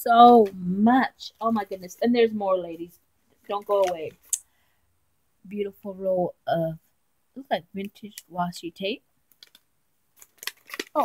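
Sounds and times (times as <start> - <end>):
packaging clicks and rustles: 9.3 - 9.6, 10.2 - 11.0.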